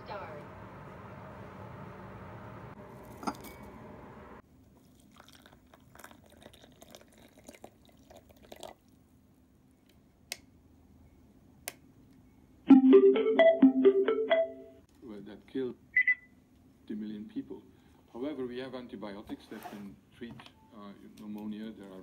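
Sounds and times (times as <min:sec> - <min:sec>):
water trickling into cup: 0:04.8 - 0:09.0.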